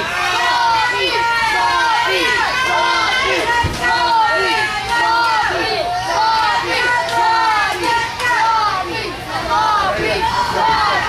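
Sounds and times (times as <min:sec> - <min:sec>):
children shouting and yelling: 0:00.0 - 0:11.0.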